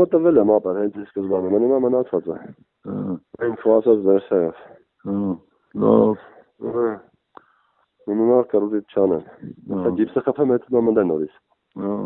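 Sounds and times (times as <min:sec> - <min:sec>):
person talking over telephone: 0:00.0 - 0:07.1, 0:08.1 - 0:12.0.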